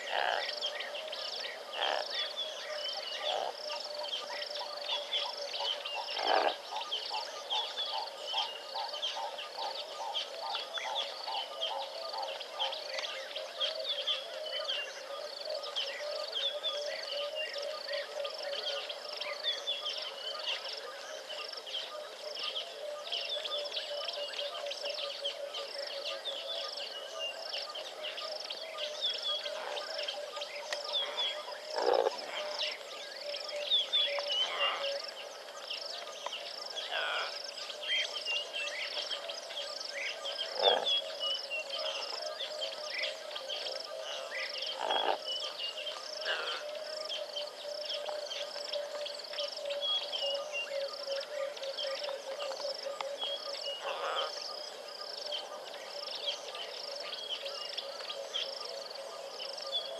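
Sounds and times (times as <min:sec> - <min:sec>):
birds calling: 0:22.5 - 0:59.9.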